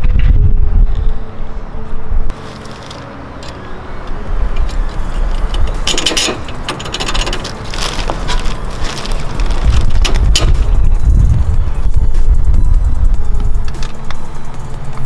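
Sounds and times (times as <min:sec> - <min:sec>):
hand tool clicking and scraping metal: 0:04.6 - 0:08.6.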